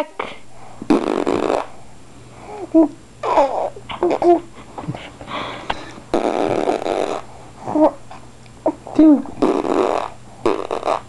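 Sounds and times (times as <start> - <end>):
baby blowing a raspberry: 0.2 - 1.8, 6.1 - 7.3, 9.4 - 11.0.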